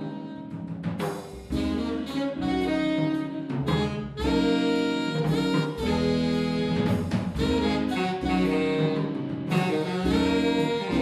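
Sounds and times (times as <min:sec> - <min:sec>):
double bass: 0:00.0 - 0:11.0
saxophones playing in harmony: 0:00.0 - 0:11.0.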